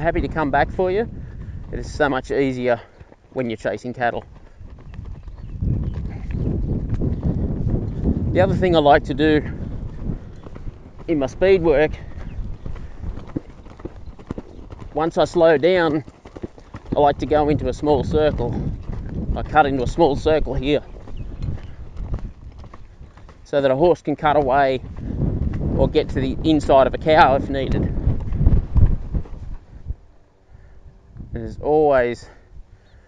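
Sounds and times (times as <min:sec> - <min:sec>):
horse hoofbeats on sand: 0:00.0 - 0:30.0.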